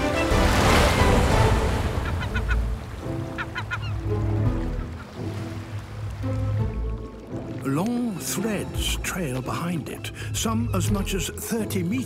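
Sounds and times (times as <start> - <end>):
wave washing: 0.0 - 10.9
background music: 0.0 - 12.0
seabirds honking calls: 0.0 - 12.0.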